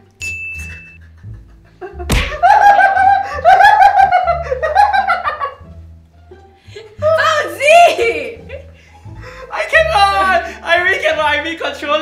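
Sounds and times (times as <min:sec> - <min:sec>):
person laughing loudly: 0:01.0 - 0:05.6.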